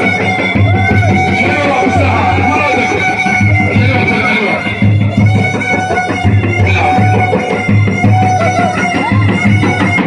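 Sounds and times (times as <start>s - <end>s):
drum beating: 0.0s - 10.0s
reed pipe high tone: 0.0s - 10.0s.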